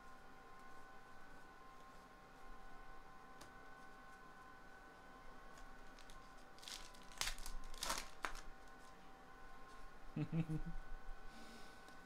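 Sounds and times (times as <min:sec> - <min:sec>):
wrapper being torn open: 0:05.8 - 0:08.8.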